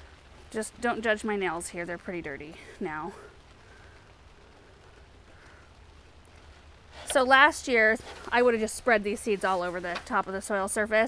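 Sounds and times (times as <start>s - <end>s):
fingers rustling in soil: 6.9s - 10.6s.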